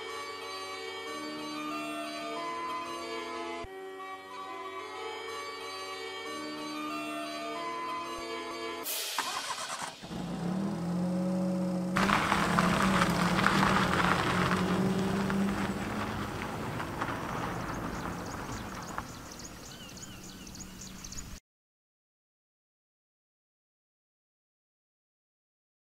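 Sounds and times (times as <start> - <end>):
car engine idling and accelerating: 9.0 - 21.4
birds chirping faintly: 12.8 - 21.4.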